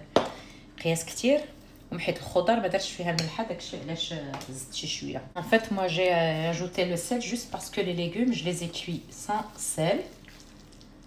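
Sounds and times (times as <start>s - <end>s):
woman talking: 0.8s - 10.2s.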